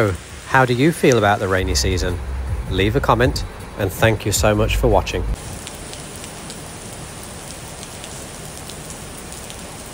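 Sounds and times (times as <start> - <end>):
heavy rain on pavement: 0.0 - 9.9.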